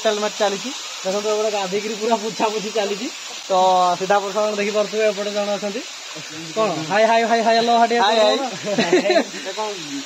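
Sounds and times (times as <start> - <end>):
man talking: 0.0 - 10.0
rushing water hiss: 0.0 - 10.0.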